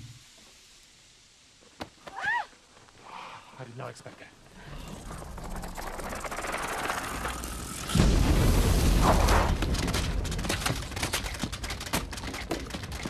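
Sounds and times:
debris pattering down: 4.9 - 13.0
explosion boom with rumble: 7.5 - 11.6.

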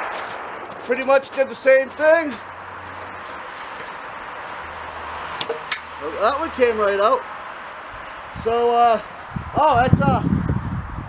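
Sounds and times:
outdoor background hiss: 0.0 - 10.9
sharp metallic clicks: 5.4 - 6.3.

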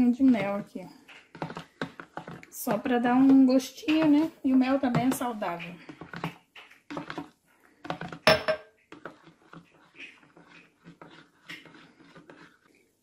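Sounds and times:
spoon clinking: 8.2 - 8.7.

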